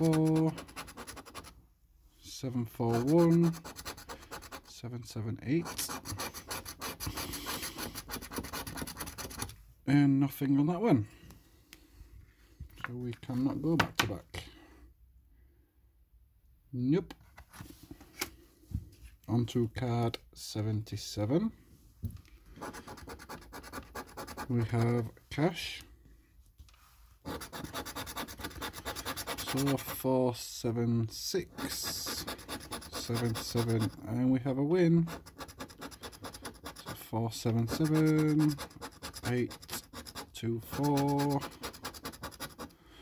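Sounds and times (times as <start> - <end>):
coin scraping scratch card: 0.0 - 1.5, 2.9 - 4.7, 5.6 - 9.5, 22.6 - 25.0, 27.3 - 30.0, 31.5 - 34.0, 35.1 - 42.7.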